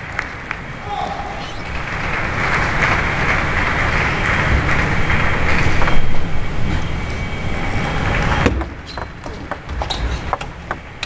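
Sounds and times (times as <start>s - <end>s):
arena crowd murmur: 0.0s - 8.0s.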